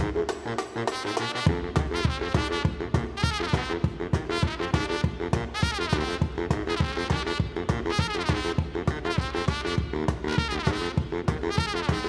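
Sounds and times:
low saxophone riff: 0.0 - 12.0
trumpet line with pitch bends: 0.0 - 12.0.

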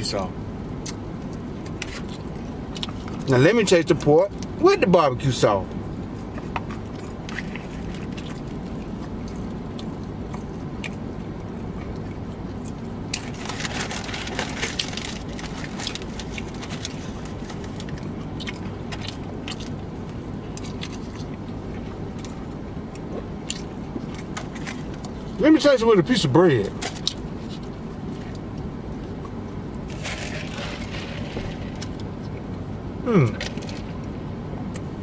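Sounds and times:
man chewing food: 5.8 - 25.4
low hum: 26.3 - 35.0.

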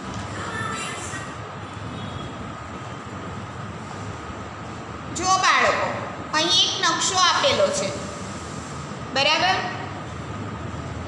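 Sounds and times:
steady rumble and hiss: 0.0 - 11.0.

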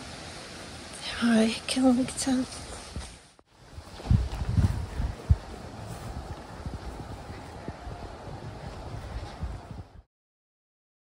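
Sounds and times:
wind buffeting microphone: 2.9 - 10.1.

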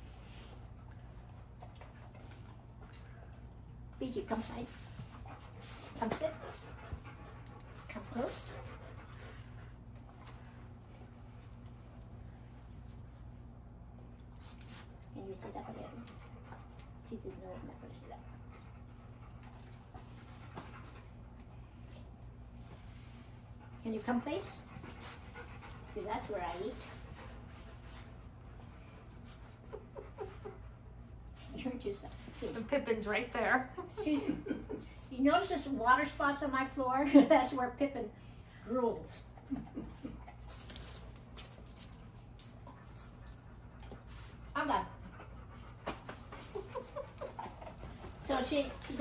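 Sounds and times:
steady low hum: 0.0 - 49.0
dog panting: 4.2 - 12.1, 15.3 - 31.0, 41.8 - 49.0.

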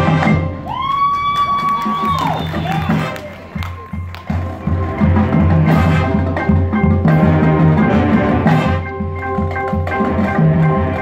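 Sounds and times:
marching band playing: 0.0 - 11.0.

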